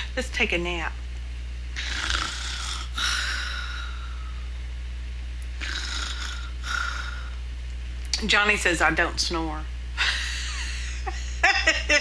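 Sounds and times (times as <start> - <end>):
person mock snoring: 1.8 - 3.8, 5.6 - 7.3.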